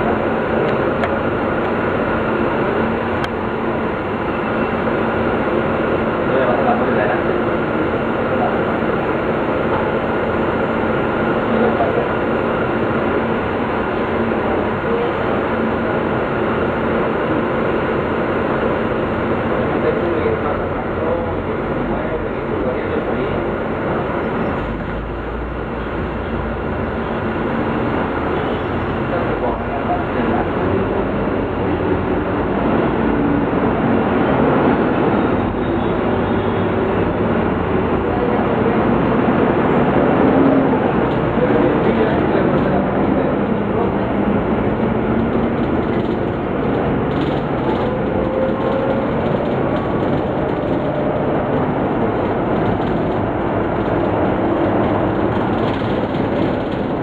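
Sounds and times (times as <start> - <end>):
bus diesel engine running: 0.0 - 57.0
road rumble: 0.0 - 57.0.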